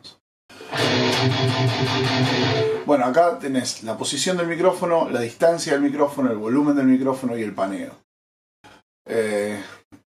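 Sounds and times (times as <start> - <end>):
distorted electric guitar chords: 0.6 - 2.9.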